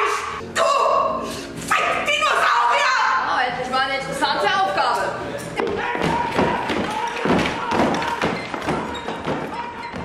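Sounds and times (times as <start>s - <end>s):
furniture thumping and knocking: 5.6s - 10.0s.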